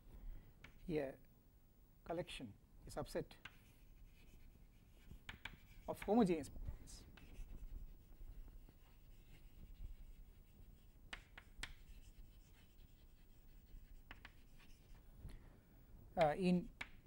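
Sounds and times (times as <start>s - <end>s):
chalk tapping on board: 3.4s - 6.3s, 7.1s - 7.7s, 8.6s - 15.0s, 16.2s - 17.0s
chalk scratching on blackboard: 3.4s - 6.4s, 7.0s - 15.0s.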